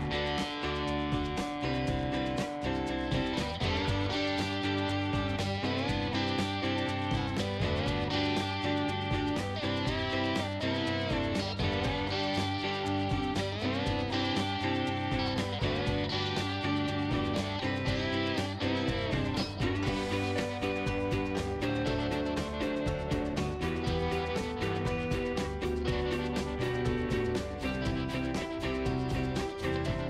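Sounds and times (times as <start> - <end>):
strummed guitar music: 0.0 - 30.0.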